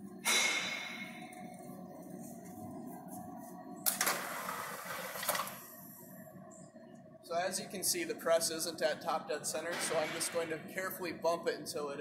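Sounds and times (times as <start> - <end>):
punch press motor humming: 3.8 - 5.7.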